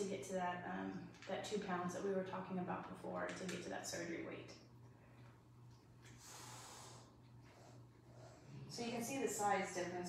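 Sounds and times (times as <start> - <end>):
low steady hum: 0.0 - 10.0
faint breathy rush of air: 6.1 - 8.8.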